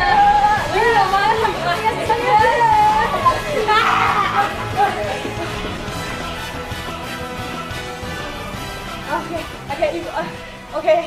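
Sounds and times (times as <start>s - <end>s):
boys shouting and shrieking: 2.4s - 5.3s.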